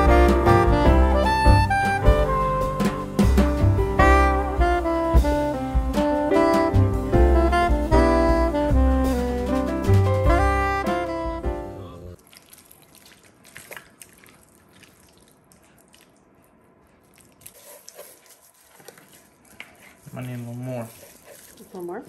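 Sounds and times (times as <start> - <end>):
jazz music with saxophone: 0.0 - 12.2.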